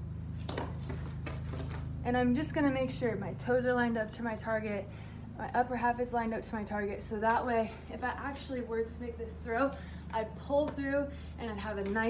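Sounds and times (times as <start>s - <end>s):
steady low hum: 0.0s - 12.0s
softball knocking on concrete: 0.4s - 1.9s.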